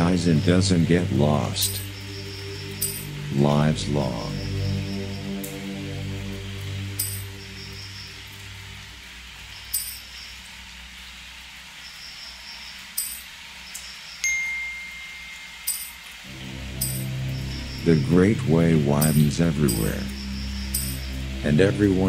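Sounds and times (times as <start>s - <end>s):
thin high tone: 0.0s - 8.8s, 14.2s - 22.0s
low synthesizer chord: 0.0s - 9.1s, 16.2s - 22.0s
steady hiss: 0.0s - 22.0s
light chime strikes: 14.2s - 16.0s, 16.8s - 17.2s.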